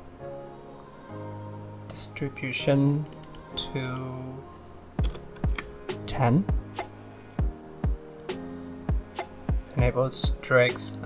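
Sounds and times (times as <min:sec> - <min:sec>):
electronic background music: 0:00.0 - 0:11.0
keyboard keys clicking: 0:03.0 - 0:04.1.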